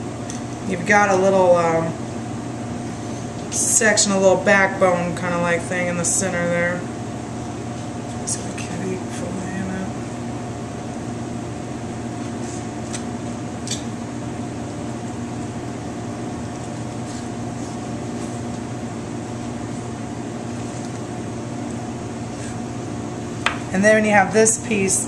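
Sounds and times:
kitchen machinery hum: 0.0s - 25.0s.

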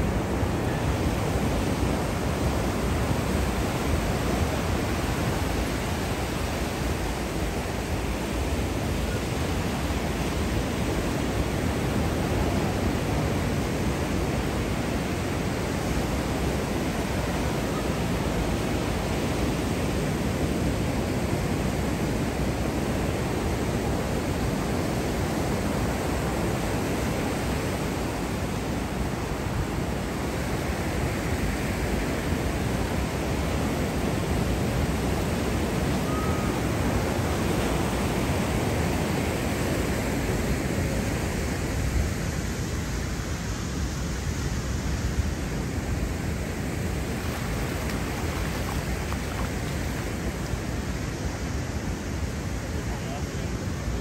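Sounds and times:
ocean surf rushing: 0.0s - 54.0s.

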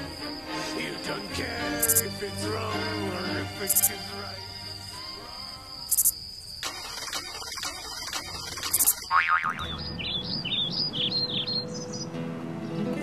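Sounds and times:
steady high tone: 0.0s - 6.1s
bird chirping: 0.0s - 6.6s, 7.4s - 13.0s
clicks: 5.9s - 9.1s.

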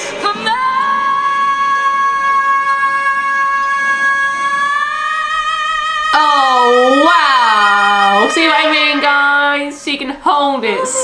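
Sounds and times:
woman singing a sustained high note: 0.0s - 11.0s.

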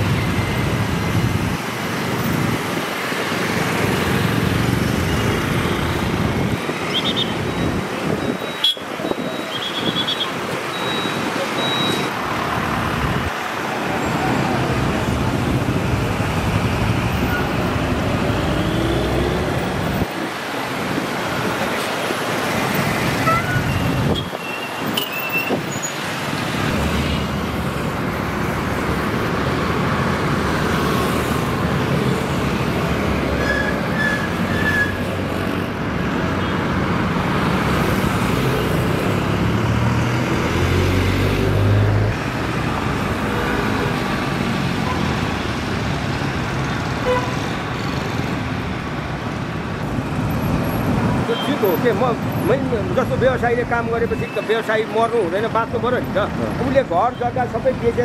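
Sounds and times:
dense road traffic: 0.0s - 58.0s.

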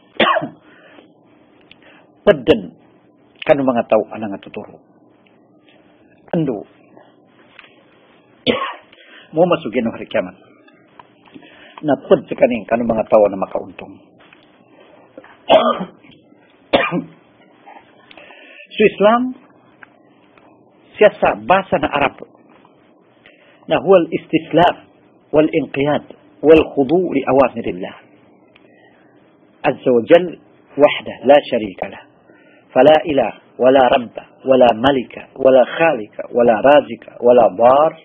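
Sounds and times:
man coughing: 0.2s - 0.6s, 8.4s - 8.9s, 15.5s - 16.0s, 16.7s - 17.2s.

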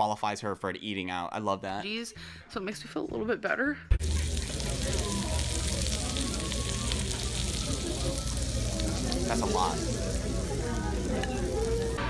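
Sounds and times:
faint restaurant voices: 3.8s - 12.0s
food sizzling on a skillet: 4.0s - 12.0s.

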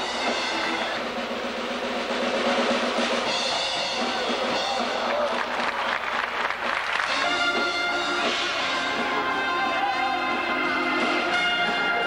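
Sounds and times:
organ notes: 0.0s - 1.2s, 6.8s - 12.0s
snare drum roll: 0.0s - 9.4s.

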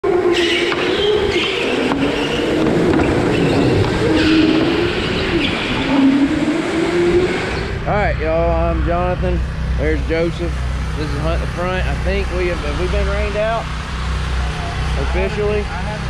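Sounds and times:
kart tyres squealing: 0.0s - 9.2s
go-kart motors racing: 0.0s - 16.0s.

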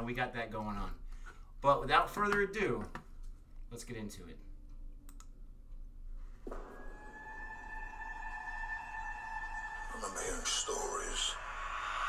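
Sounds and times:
low hum: 4.4s - 12.0s
sustained musical tone: 6.5s - 11.5s.

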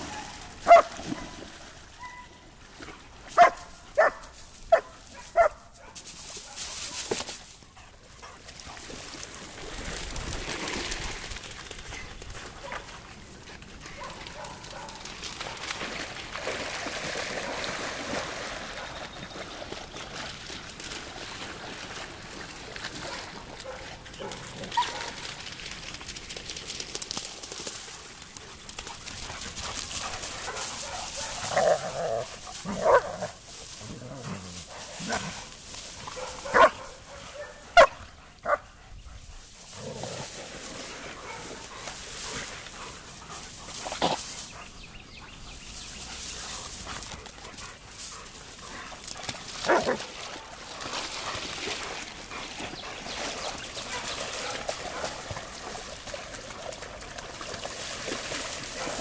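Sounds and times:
dogs barking: 0.1s - 1.3s, 3.4s - 7.0s, 13.9s - 15.6s, 23.6s - 25.2s, 30.4s - 33.4s, 36.1s - 38.7s, 41.2s - 41.6s, 49.7s - 50.1s.

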